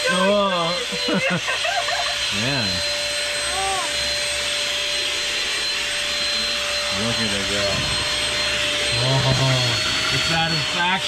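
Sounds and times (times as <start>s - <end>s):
handheld vacuum cleaner running: 0.0s - 11.0s.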